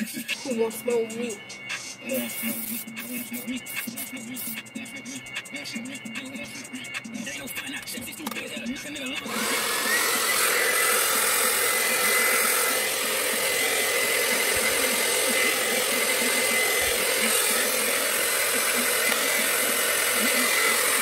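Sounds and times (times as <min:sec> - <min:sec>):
hair dryer running: 0:08.2 - 0:21.0.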